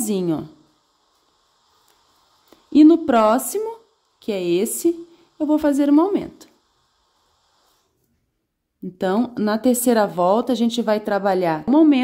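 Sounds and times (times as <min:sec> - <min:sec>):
woman's voice: 0:00.0 - 0:00.6, 0:02.7 - 0:06.5, 0:08.8 - 0:12.0.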